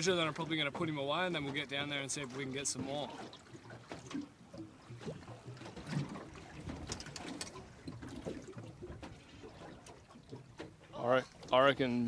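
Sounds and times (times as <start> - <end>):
water lapping against boat hull: 0.0 - 12.0.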